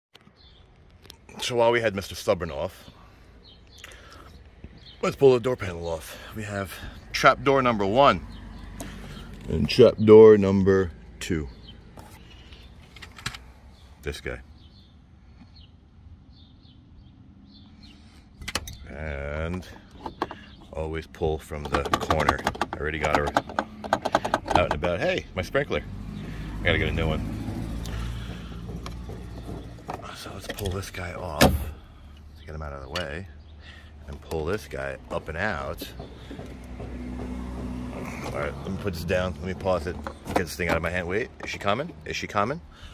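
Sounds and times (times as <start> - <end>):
low engine hum: 22.7 - 32.4, 33.8 - 42.9.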